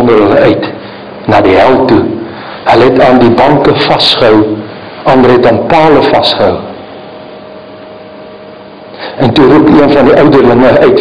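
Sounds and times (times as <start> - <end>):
faint constant hum: 0.0 - 11.0.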